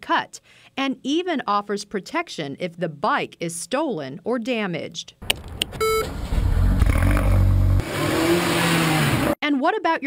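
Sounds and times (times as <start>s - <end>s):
car engine rumbling: 5.3s - 8.0s.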